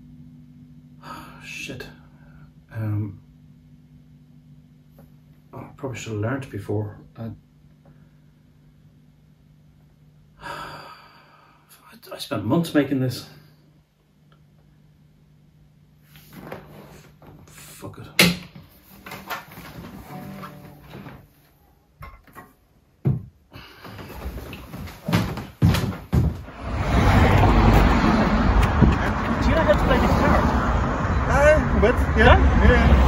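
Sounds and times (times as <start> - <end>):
electric guitar plucks and scrapes: 19.9 - 21.3
passing traffic: 26.4 - 33.0
street voices: 26.7 - 33.0.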